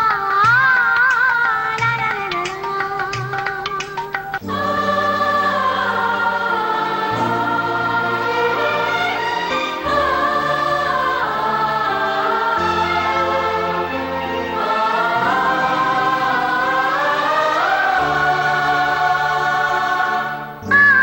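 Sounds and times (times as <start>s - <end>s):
choir singing over low chords: 0.0s - 21.0s
louder song: 0.0s - 21.0s.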